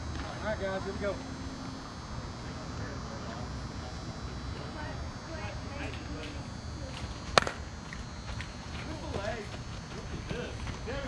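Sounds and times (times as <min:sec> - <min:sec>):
bat striking ball: 0:07.3 - 0:07.6.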